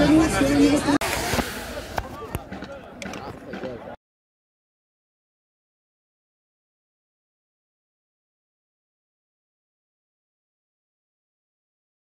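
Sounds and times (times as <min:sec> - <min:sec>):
faint voices: 0:00.0 - 0:04.0.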